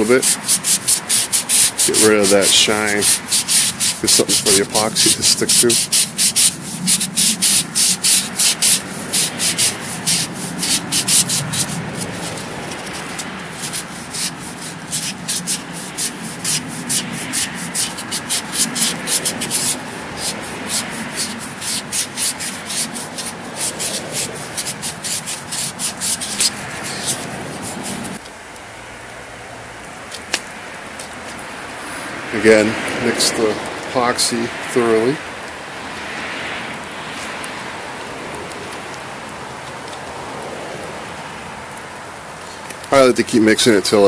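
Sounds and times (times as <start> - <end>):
sanding pad rasping on tube: 0.0 - 28.2.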